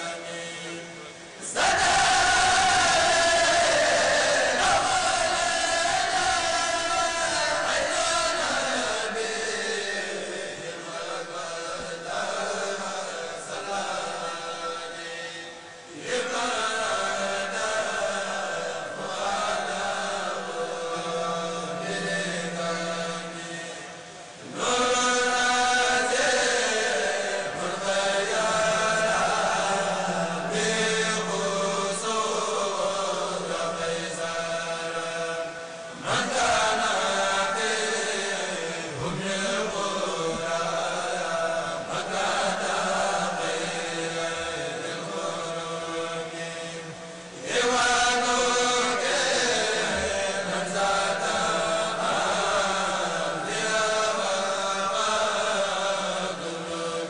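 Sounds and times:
men chanting over loudspeakers: 0.0s - 57.0s.

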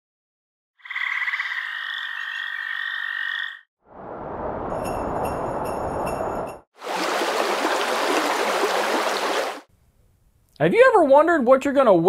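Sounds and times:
frog trilling: 0.8s - 3.6s
rushing noise: 3.9s - 9.7s.

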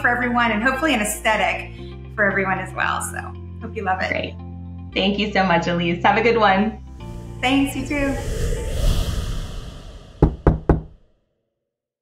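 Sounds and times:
transition whoosh: 6.9s - 11.1s.

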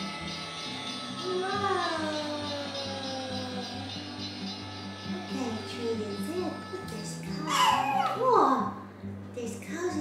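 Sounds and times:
background music: 0.0s - 10.0s
baby squealing: 1.4s - 8.4s.

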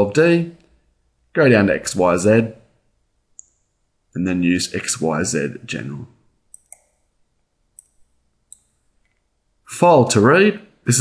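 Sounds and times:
computer mouse clicks: 6.5s - 7.1s, 7.8s - 9.2s.

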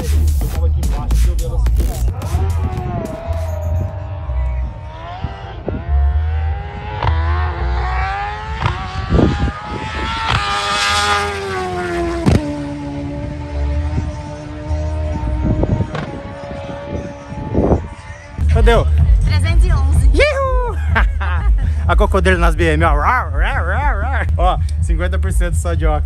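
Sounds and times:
music with heavy beat: 0.0s - 3.8s, 18.4s - 26.0s
motorcycle engine accelerating: 0.0s - 26.0s.

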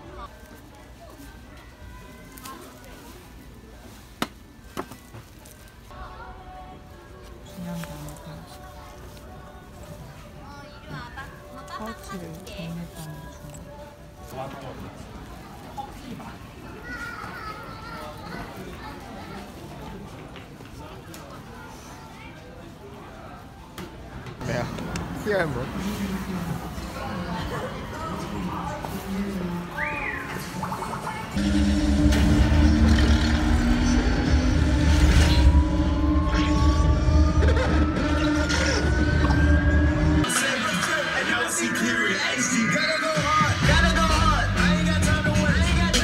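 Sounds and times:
film soundtrack over speakers: 28.5s - 46.0s
deep bass rumble: 31.4s - 40.2s
rising held tone: 31.4s - 40.3s
person laughing: 37.2s - 38.2s.

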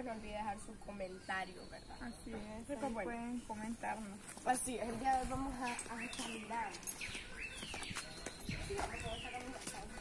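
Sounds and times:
footsteps in sandals on dirt: 3.6s - 10.0s.

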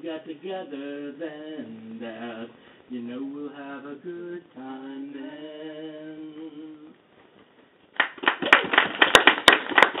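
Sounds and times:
audience applauding: 8.0s - 10.0s.

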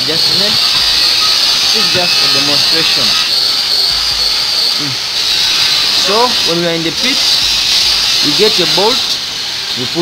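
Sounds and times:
high-pitched background hiss: 0.0s - 10.0s
man murmuring: 4.8s - 5.0s.

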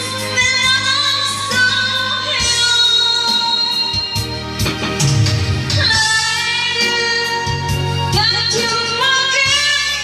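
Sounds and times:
woman singing: 0.0s - 4.4s, 5.7s - 10.0s.

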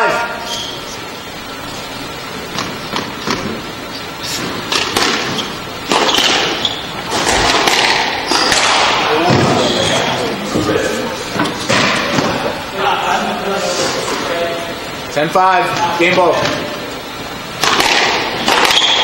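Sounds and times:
squash ball knocks and thuds: 4.7s - 9.7s, 17.6s - 19.0s.

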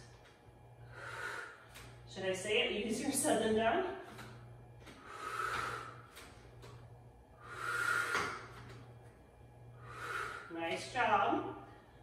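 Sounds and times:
woman breathing hard: 0.8s - 2.0s, 4.8s - 6.4s, 7.3s - 8.8s, 9.7s - 10.6s.

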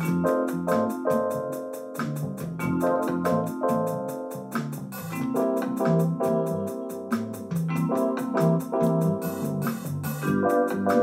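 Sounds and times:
acoustic piano chords: 0.0s - 11.0s
bass line: 0.0s - 11.0s.

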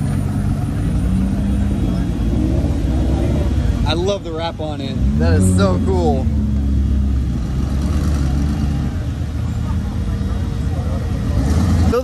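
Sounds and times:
car engine rumbling past: 0.0s - 12.0s.

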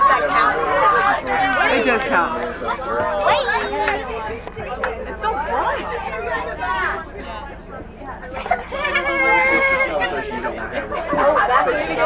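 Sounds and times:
bus low hum: 0.0s - 12.0s
girls chattering: 0.0s - 12.0s.

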